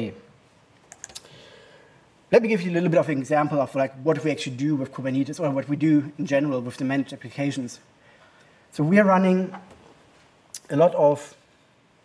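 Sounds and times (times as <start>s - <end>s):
person speaking: 2.3s - 7.9s, 8.7s - 9.9s, 10.5s - 11.4s.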